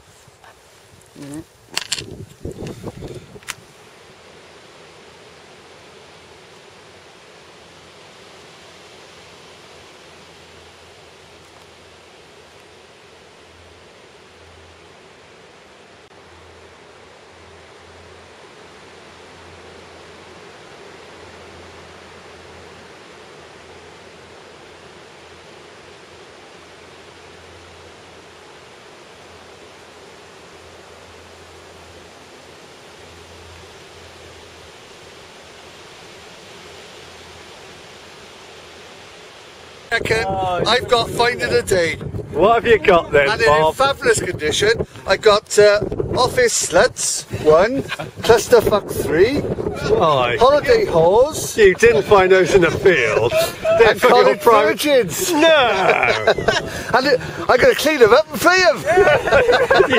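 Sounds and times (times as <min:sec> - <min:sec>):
open-air background hiss: 0:00.0 - 0:59.9.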